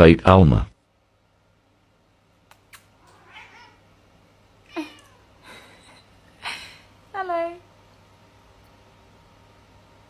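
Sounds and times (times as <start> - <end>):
cat meowing: 3.0 - 3.9, 4.7 - 5.4.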